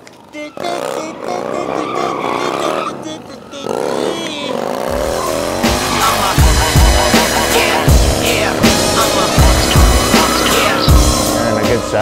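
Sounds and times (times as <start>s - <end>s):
motorcycle engine revving: 0.0s - 12.0s
music with deep bass: 4.9s - 12.0s.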